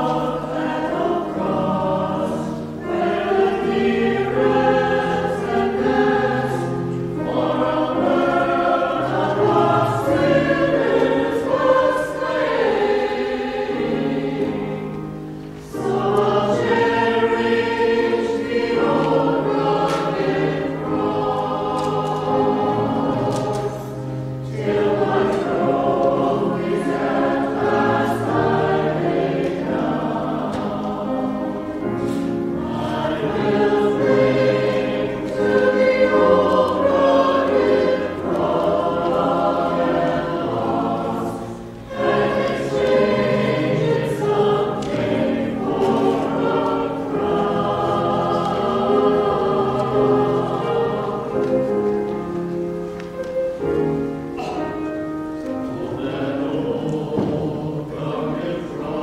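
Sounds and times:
church choir singing: 0.0 - 59.0.

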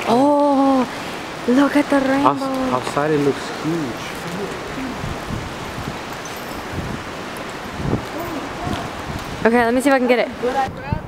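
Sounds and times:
faint voices: 0.0 - 5.3, 8.0 - 11.0
light rain falling: 0.0 - 11.0.

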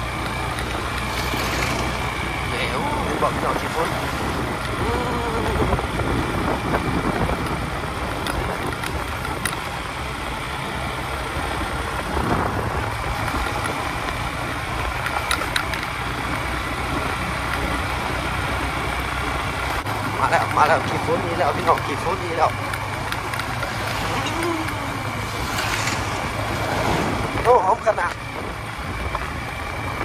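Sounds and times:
tyre rumble on dirt road: 0.0 - 4.8, 19.5 - 30.0
pickup truck passing: 0.0 - 30.0
small motorcycle engine running: 0.0 - 30.0
wind: 0.0 - 30.0.

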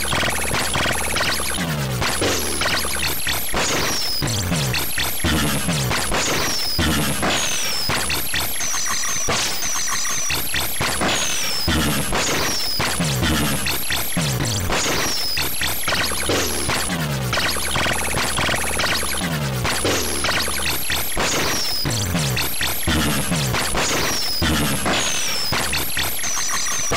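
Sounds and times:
buzzy square-wave music: 0.0 - 7.4, 11.7 - 15.1, 15.7 - 26.9.

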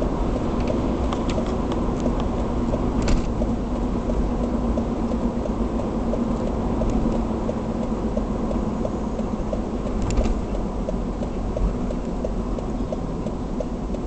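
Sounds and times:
car engine and tyre noise: 0.0 - 14.0
faint regular ticking: 0.1 - 14.0.

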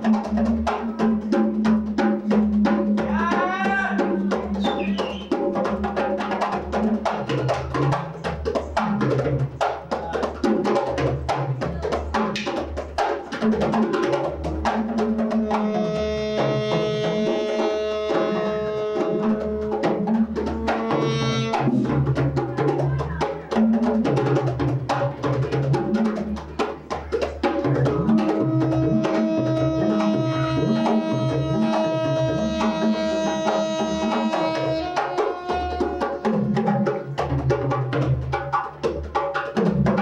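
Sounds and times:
hand drums playing fast groove: 0.0 - 40.0
saxophone holding long notes: 15.4 - 21.8, 28.3 - 36.4.

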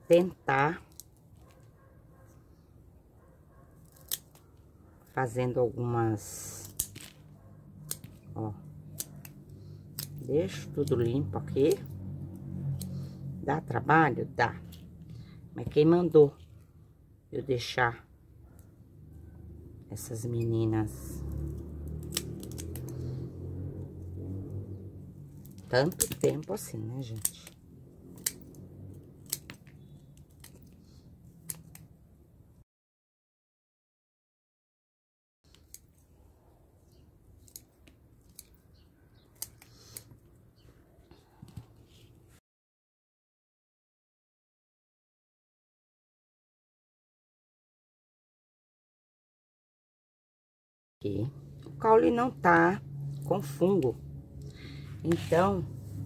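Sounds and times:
small scissors snipping: 3.8 - 4.6, 7.8 - 10.3, 12.7 - 13.0, 21.4 - 23.3, 27.1 - 31.9, 35.5 - 36.0, 37.4 - 40.2.

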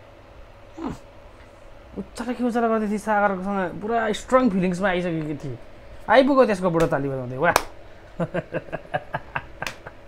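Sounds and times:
short vocal sound falling in pitch: 0.7 - 1.1.

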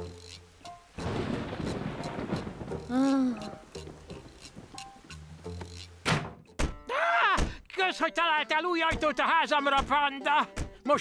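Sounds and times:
heavy rain pouring: 1.0 - 5.0.

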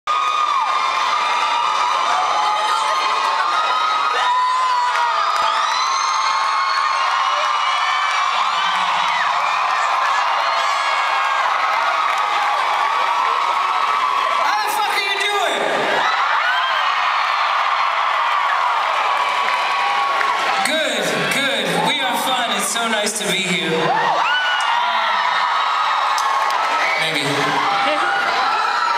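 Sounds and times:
concert crowd cheering and screaming: 0.1 - 28.9.

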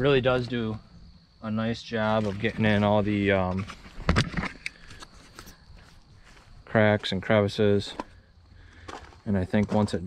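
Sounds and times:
faint clicks and scuffs: 2.0 - 10.0.

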